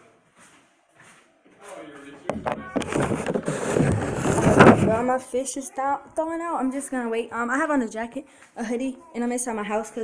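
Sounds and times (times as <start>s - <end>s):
rubbing and rustling on microphone: 2.3s - 5.2s.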